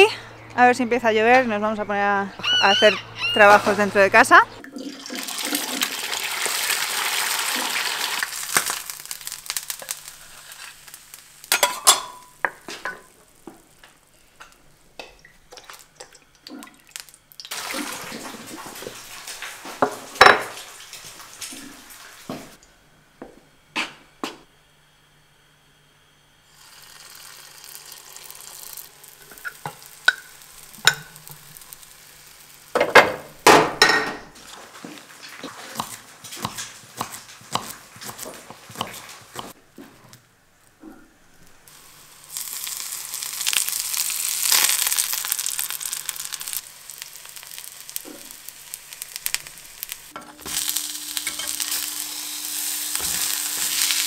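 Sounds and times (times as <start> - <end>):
eggs sizzling in a pan: 4.9 - 22.6, 26.4 - 39.9, 41.6 - 54.0
kitchen utensils clinking: 11.5 - 13.1
knife chopping on wooden board: 35.7 - 39.6.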